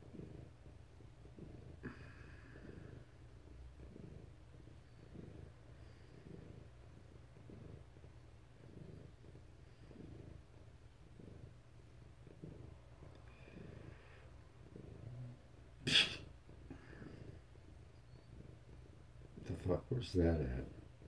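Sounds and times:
cat purring: 0.0s - 21.0s.

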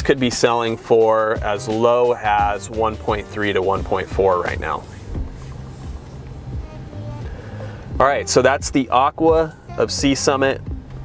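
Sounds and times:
car driving hum: 0.0s - 11.0s
quiet music with bass notes: 0.0s - 11.0s.

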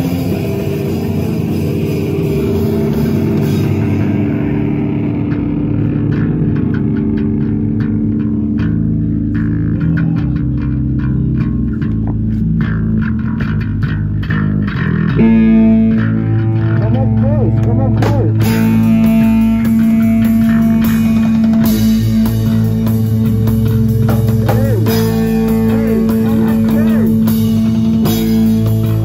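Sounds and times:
electric bass: 0.0s - 29.0s
electric guitar: 0.0s - 29.0s.

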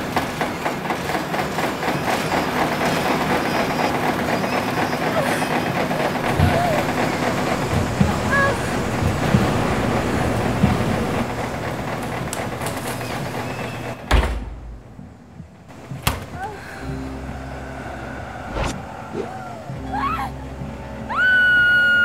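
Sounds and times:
washing machine drum tumbling: 0.0s - 16.6s
low droning hum: 5.1s - 22.0s.

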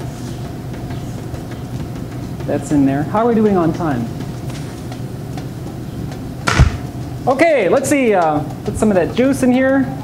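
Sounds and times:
sharp thump: 6.5s - 6.9s.

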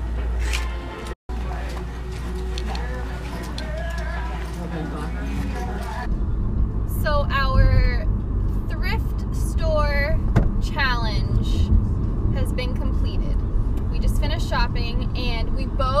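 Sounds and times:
car cabin road rumble: 1.3s - 16.0s.

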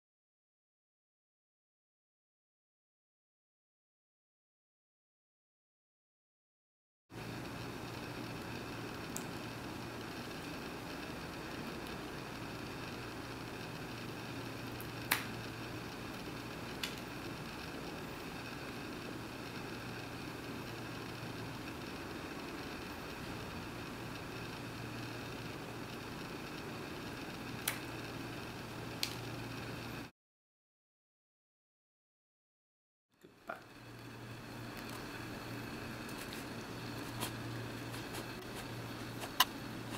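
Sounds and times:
low room hum: 7.2s - 30.1s, 33.2s - 39.9s.

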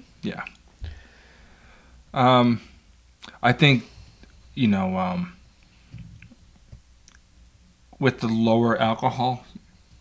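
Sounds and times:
mouth clicks and lip sounds: 3.2s - 3.4s, 5.6s - 7.3s.

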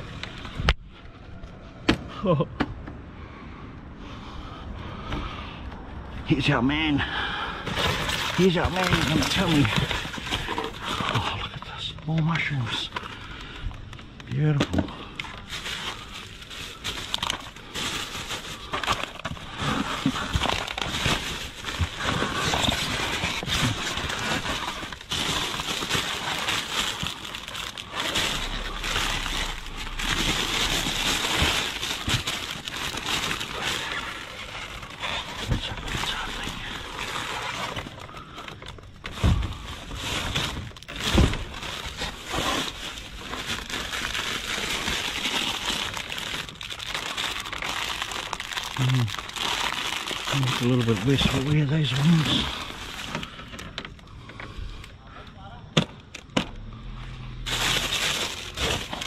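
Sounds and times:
plastic bags crinkling: 7.5s - 54.1s, 57.4s - 59.0s.

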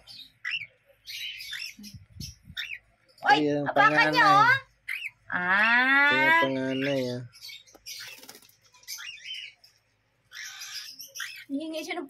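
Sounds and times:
cockatiels chirping: 0.0s - 9.7s, 10.3s - 11.8s.

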